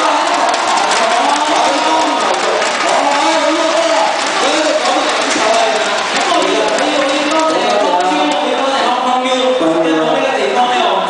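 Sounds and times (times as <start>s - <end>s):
amplified voices echoing in hall: 0.0s - 11.0s
audience noise: 0.0s - 11.0s.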